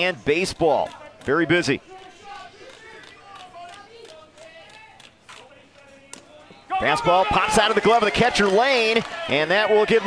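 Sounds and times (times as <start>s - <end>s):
faint ballpark background: 0.0s - 10.0s.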